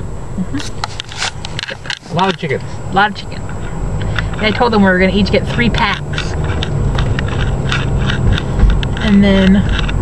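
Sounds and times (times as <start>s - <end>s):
car cabin road rumble: 0.0s - 10.0s
thump: 8.2s - 8.9s.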